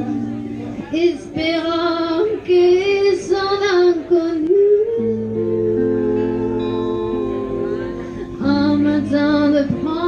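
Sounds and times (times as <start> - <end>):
acoustic guitar: 0.0 - 10.0
woman singing: 0.8 - 10.0.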